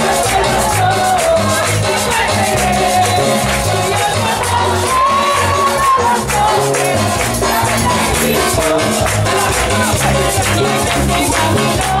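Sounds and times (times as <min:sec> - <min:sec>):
bass notes: 0:00.0 - 0:12.0
congregation clapping along: 0:00.0 - 0:12.0
electronic keyboard: 0:00.0 - 0:12.0
latin worship music: 0:00.0 - 0:12.0.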